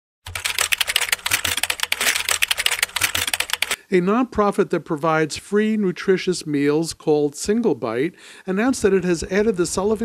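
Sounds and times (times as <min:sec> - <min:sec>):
fast keyboard key clicks: 0:00.2 - 0:03.8.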